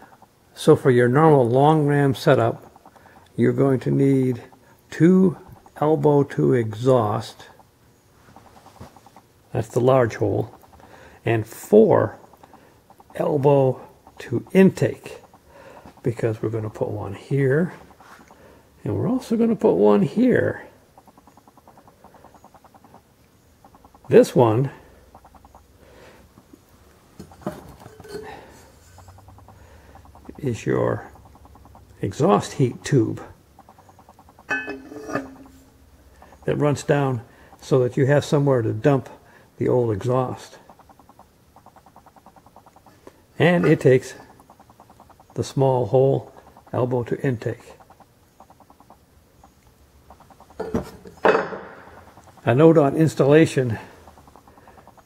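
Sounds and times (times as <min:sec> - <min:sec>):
metal engine parts ticking: 0:00.0 - 0:26.6, 0:27.2 - 0:55.0
light knocks of metal parts: 0:34.4 - 0:35.7
metal scrape: 0:34.5 - 0:35.7.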